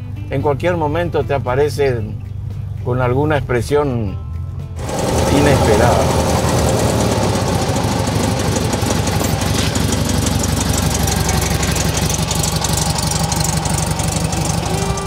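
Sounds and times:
car engine clattering: 4.8s - 15.0s.

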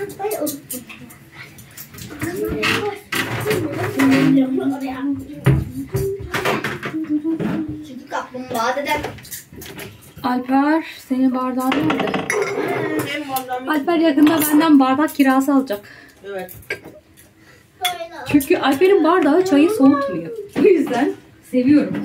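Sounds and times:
dishes and cutlery clinking: 0.0s - 4.8s, 11.6s - 13.4s, 16.4s - 19.6s
people talking: 2.1s - 9.2s, 17.8s - 22.0s.

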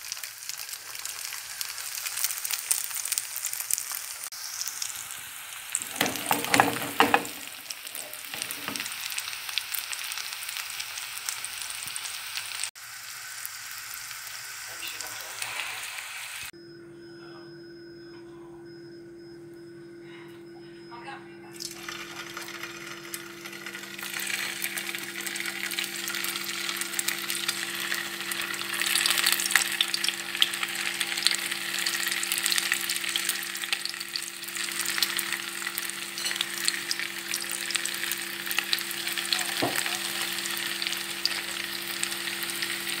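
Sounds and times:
meatballs sizzling and popping in oil: 0.0s - 15.0s, 21.6s - 43.0s
steady low hum: 16.6s - 30.4s.

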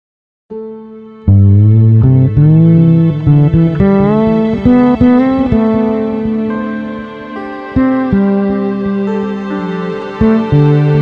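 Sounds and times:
fretless electric bass melody: 0.9s - 11.0s.

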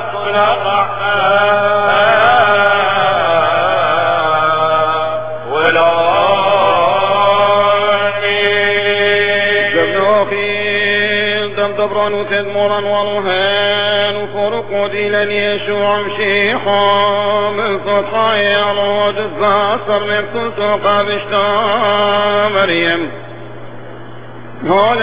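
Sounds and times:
man singing a chant: 0.0s - 23.2s, 24.6s - 25.0s
steady low hum: 0.0s - 25.0s.

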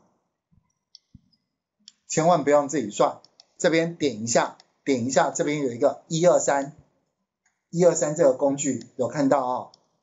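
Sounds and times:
computer mouse clicks: 0.6s - 2.1s, 3.2s - 3.6s, 4.5s - 4.8s, 7.4s - 7.7s.

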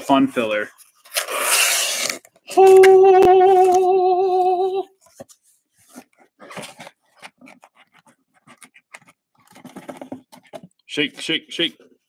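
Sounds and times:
cardboard boxes scraping and knocking: 5.1s - 8.8s, 9.4s - 10.7s.

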